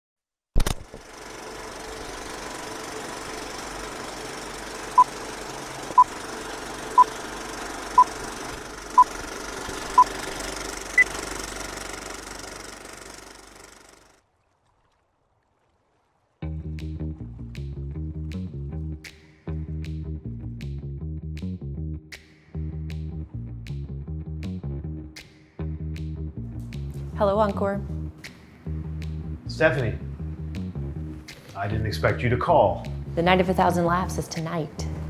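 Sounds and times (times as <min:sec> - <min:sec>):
film projector whir and crackle: 0:00.6 - 0:14.2.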